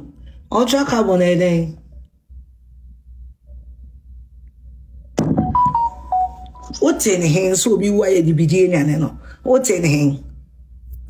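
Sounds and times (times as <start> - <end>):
faint low hum: 0.0 - 11.0
short electronic beeps: 5.4 - 6.8.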